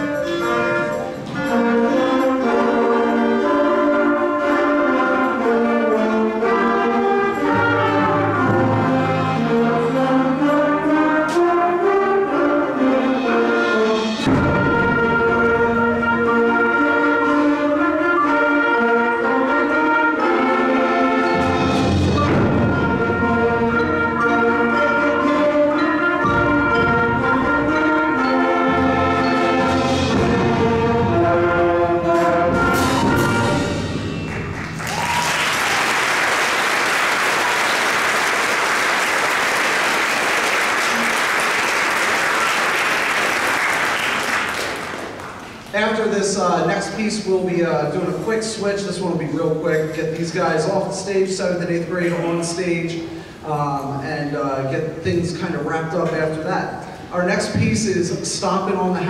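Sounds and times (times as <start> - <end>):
concert band playing: 0.0 - 53.6
sharp percussion strikes: 13.7 - 16.2, 21.2 - 31.4.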